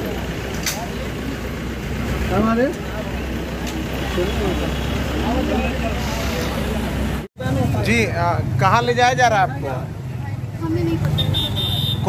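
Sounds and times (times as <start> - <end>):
engine idling: 0.0 - 7.2
people talking: 2.2 - 11.4.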